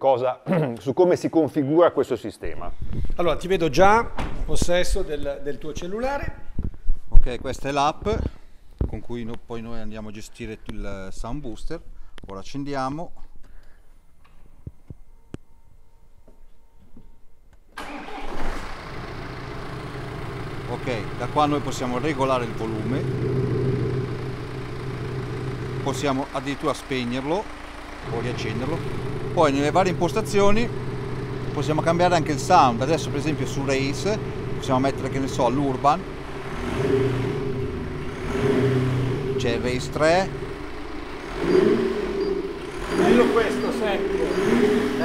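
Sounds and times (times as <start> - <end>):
synthetic exhaust note: 19.1 - 45.0.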